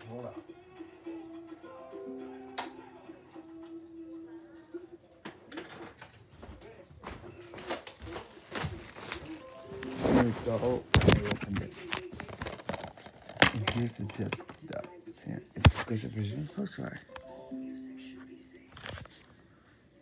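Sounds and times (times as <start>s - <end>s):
faint background music: 0.0s - 20.0s
plastic shrink-wrap crinkling: 7.4s - 13.9s.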